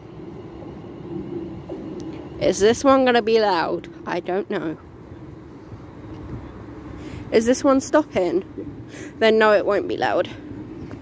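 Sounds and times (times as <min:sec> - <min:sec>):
faint steady hum: 0:00.0 - 0:11.0
train rumble approaching: 0:00.0 - 0:11.0.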